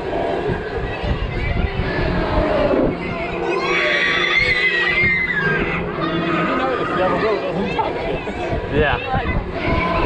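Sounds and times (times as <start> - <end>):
children's high voices: 0.0 - 10.0
wind buffeting microphone: 0.0 - 10.0
riders cheering and shouting: 0.4 - 8.8.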